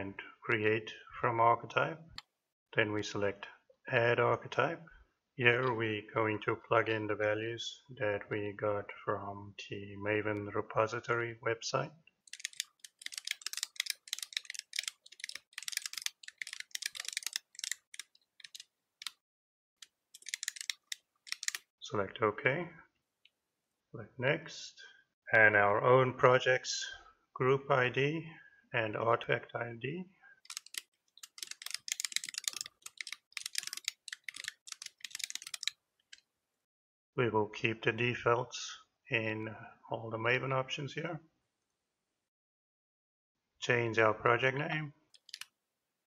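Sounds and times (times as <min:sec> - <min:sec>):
fast typing on keyboard: 0:12.3 - 0:19.2, 0:20.2 - 0:21.6, 0:30.5 - 0:35.8.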